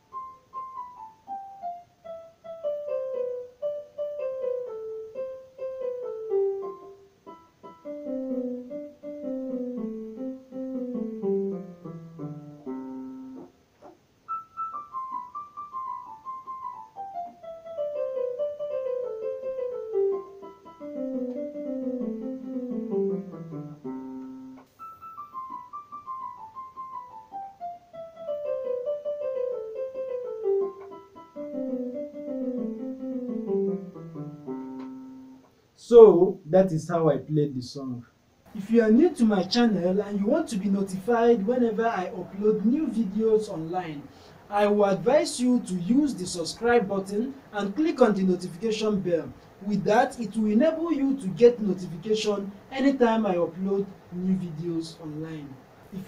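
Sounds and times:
piano descending run: 14.3 - 35.4.

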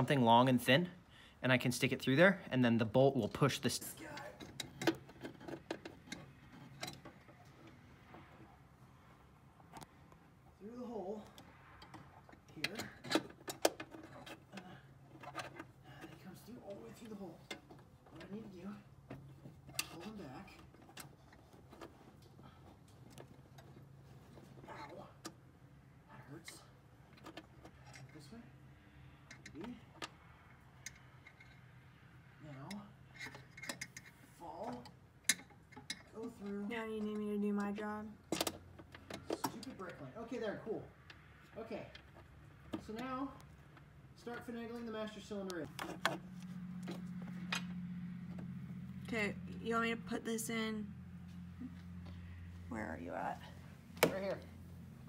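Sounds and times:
metallic clicks and taps of tools: 34.7 - 36.1.

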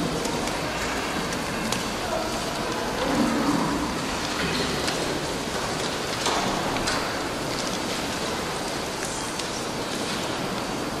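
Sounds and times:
audience clicks and rustles: 0.0 - 11.0
room noise hiss: 0.0 - 11.0.

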